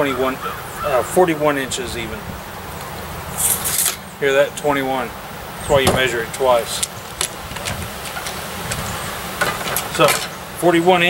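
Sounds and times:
tape measure retracting: 3.3s - 4.1s.

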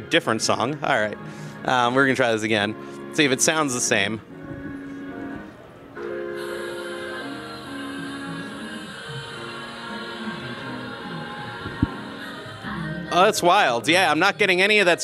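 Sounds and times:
music from a speaker: 0.8s - 15.0s.

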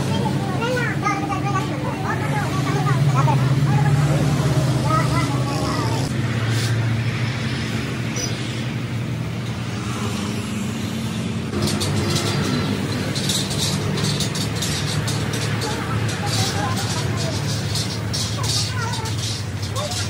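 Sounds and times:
voices talking: 0.0s - 6.7s, 11.5s - 20.0s
metal cutting machine droning: 9.1s - 20.0s.

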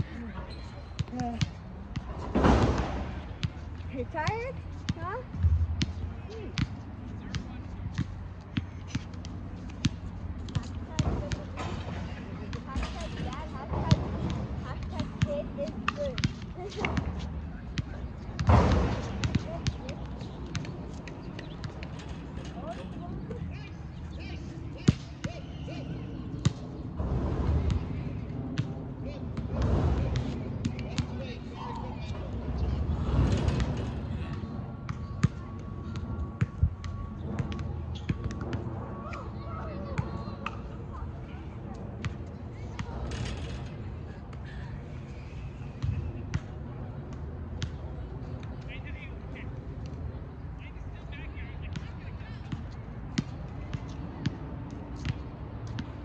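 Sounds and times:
low rumble: 5.3s - 6.2s.

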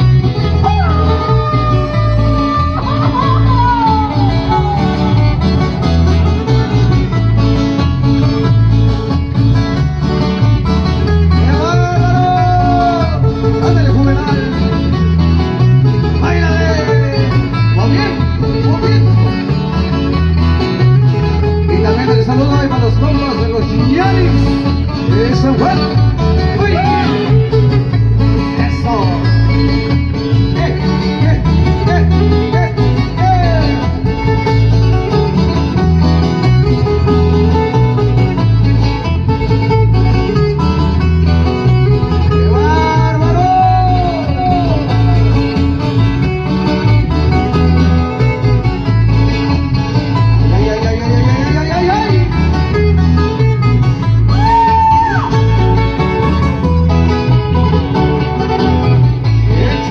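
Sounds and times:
loud live dance music: 0.0s - 6.1s.

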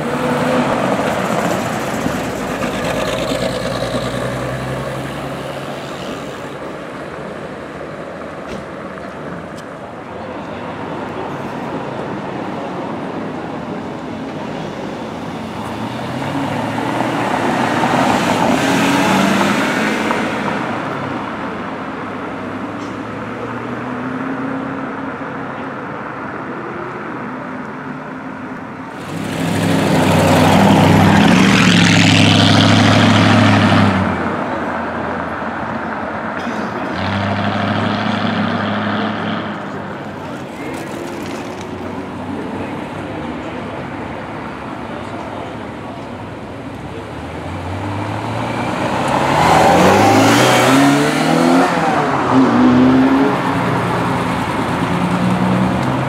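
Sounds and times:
sports cars revving past: 0.0s - 6.3s, 15.3s - 25.0s, 28.9s - 41.5s, 46.8s - 56.0s.

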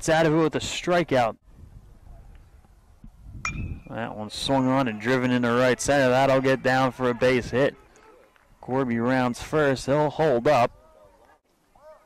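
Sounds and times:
metal bat hitting ball: 3.4s - 3.9s.

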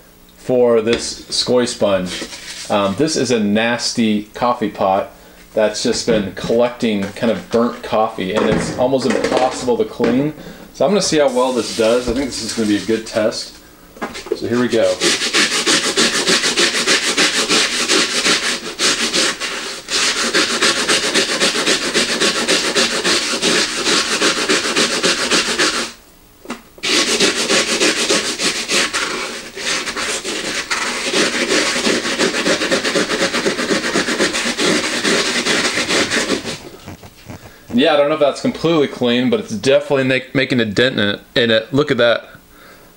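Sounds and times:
cloth scrubbing hard on metal: 11.0s - 13.4s, 14.6s - 26.0s, 26.8s - 37.8s.

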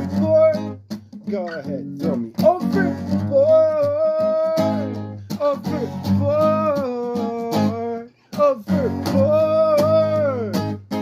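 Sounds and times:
acoustic guitar strumming: 0.0s - 11.0s
person singing: 0.0s - 11.0s.

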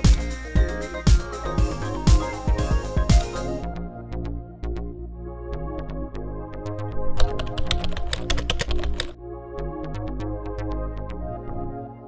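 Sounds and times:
electronic background music: 0.0s - 12.0s
keyboard typing clicks: 7.2s - 9.2s.

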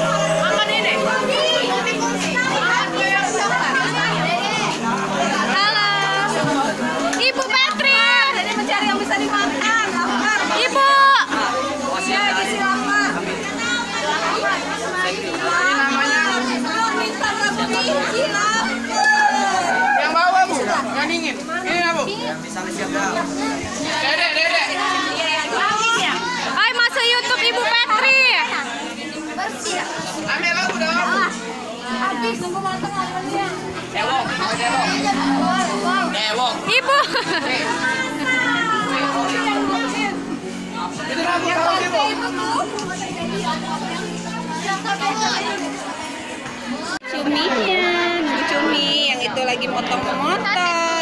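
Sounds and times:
girls chattering: 0.0s - 51.0s
high lively exclamations: 18.3s - 20.2s.

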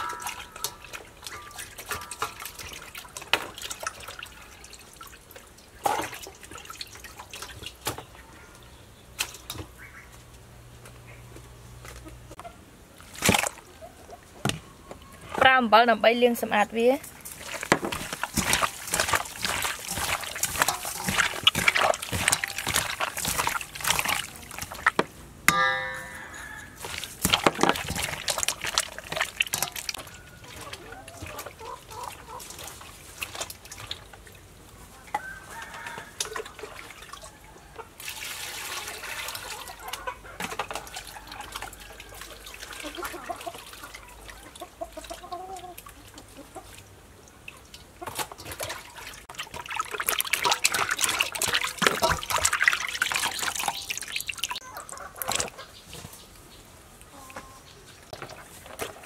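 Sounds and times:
water splashing in a steel bowl: 0.0s - 8.1s, 13.0s - 13.7s, 17.0s - 37.4s, 38.0s - 55.6s
wet squelching of kneaded stomach: 17.1s - 25.0s, 26.8s - 34.1s, 48.2s - 55.6s
short pitched tone: 25.5s - 26.8s
chicken clucking: 29.6s - 32.5s.

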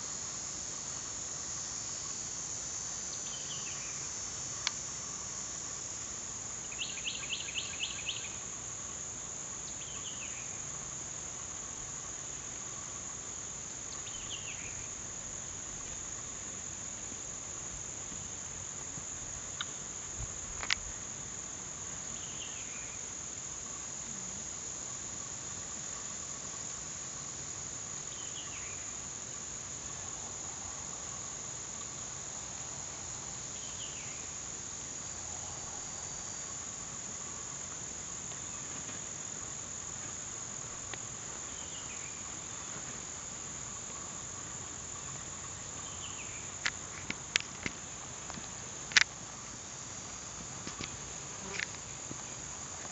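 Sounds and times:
insects droning: 0.0s - 52.9s.

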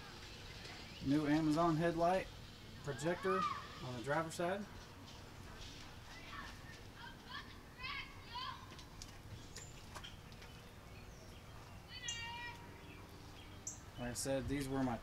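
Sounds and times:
distant high-pitched calls: 11.8s - 14.0s.

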